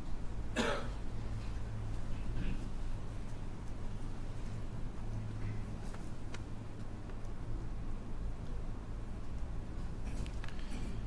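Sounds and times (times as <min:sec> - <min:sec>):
person coughing: 0:00.6 - 0:01.0.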